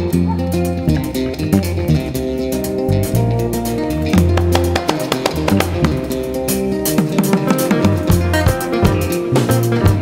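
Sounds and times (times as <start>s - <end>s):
guitar and bass music: 0.0s - 10.0s.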